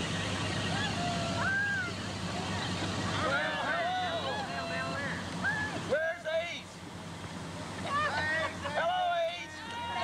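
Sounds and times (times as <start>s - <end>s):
voices calling out and talking: 0.0s - 10.0s.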